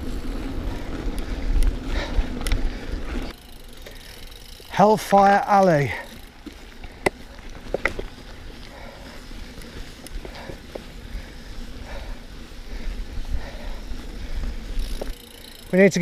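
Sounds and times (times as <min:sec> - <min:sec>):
bike clicks and rattles: 0:00.0 - 0:16.0
mountain bike rumbling on dirt trail: 0:00.0 - 0:16.0.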